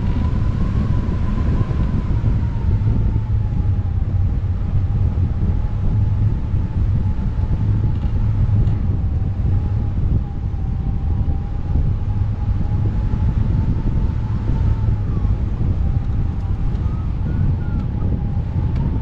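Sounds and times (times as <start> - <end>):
wind buffeting microphone: 0.0 - 19.0
thin steady whistle: 16.6 - 18.2.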